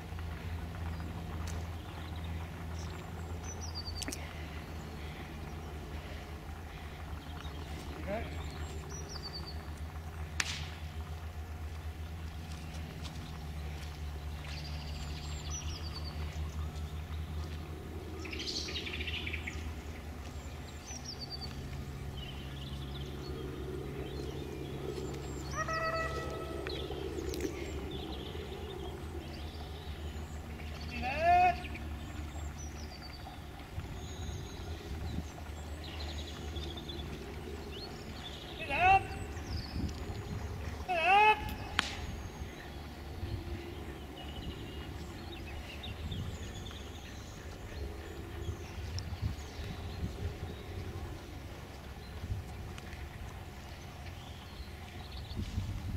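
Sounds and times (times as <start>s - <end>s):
low steady rumble: 0.0s - 55.9s
small birds chirping: 0.0s - 55.9s
hounds crying: 25.5s - 26.9s.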